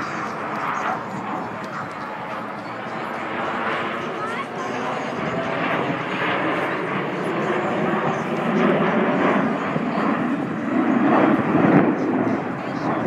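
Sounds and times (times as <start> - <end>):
jet aircraft passing: 0.0 - 13.0.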